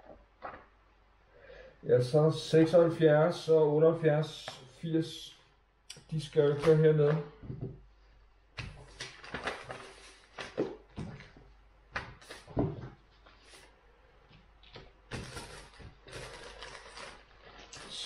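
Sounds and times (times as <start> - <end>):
paper and plastic bags rustling: 8.8 - 11.4, 15.1 - 18.0.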